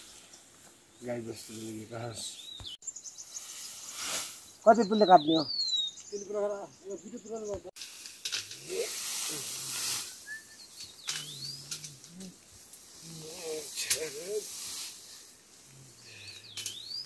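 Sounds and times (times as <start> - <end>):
leaves and stems rustling: 0.0 - 5.4, 6.0 - 17.0
bird whistle: 10.0 - 11.6.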